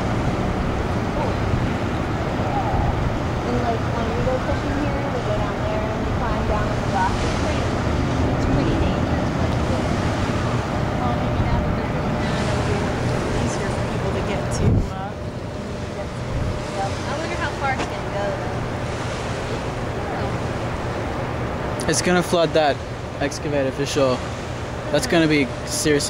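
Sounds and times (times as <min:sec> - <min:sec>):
river water rushing: 0:00.0 - 0:26.0
wind buffeting microphone: 0:00.0 - 0:26.0.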